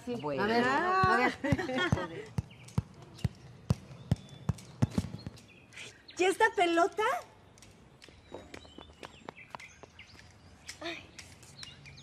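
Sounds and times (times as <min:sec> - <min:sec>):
rubber ball bouncing on tiled floor: 0:00.7 - 0:05.4.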